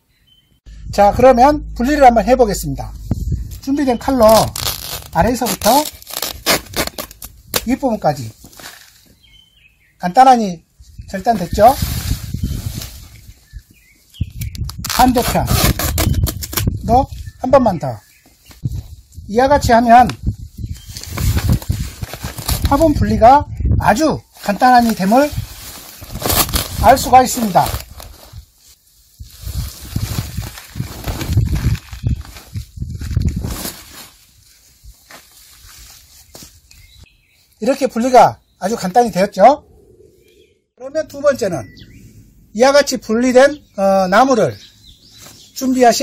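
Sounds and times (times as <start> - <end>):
leaves and plastic rustling: 3.0 - 9.5, 10.8 - 38.0, 44.1 - 46.0
fabric bag rustling and cut: 4.2 - 7.7, 24.8 - 28.4, 29.8 - 34.3
faint bird chirps: 36.2 - 42.3.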